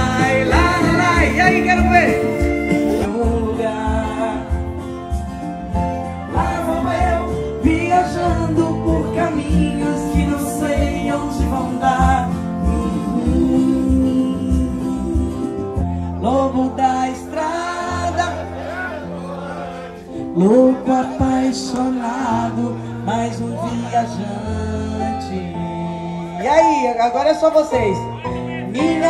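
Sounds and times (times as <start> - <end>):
country band music through speakers: 0.0 - 29.0.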